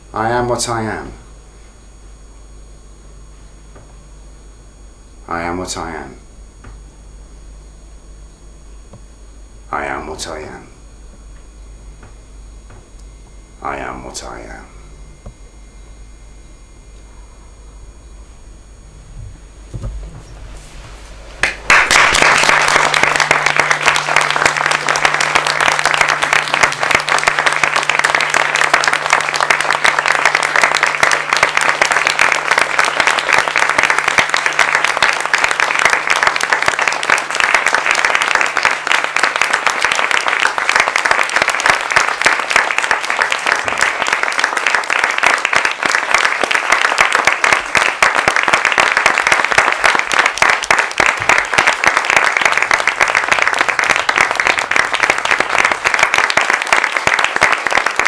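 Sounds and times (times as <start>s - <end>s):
audience applauding: 19.8s - 58.0s.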